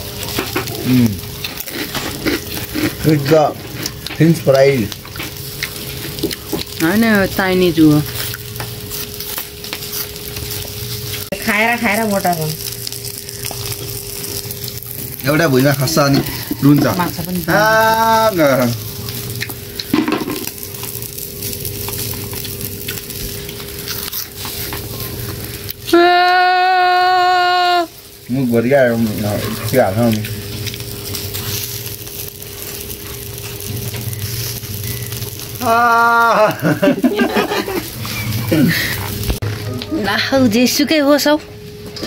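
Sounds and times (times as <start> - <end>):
steady crackling hiss: 0.0 - 26.0, 27.2 - 39.4
person making drawn-out ah sounds: 25.9 - 28.0, 35.6 - 36.8.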